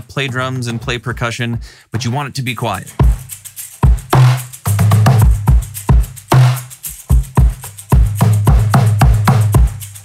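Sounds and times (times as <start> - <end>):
suitcase bass drum thumping: 0.0 - 2.3, 3.0 - 9.8
snare and tom hits: 3.0 - 10.0.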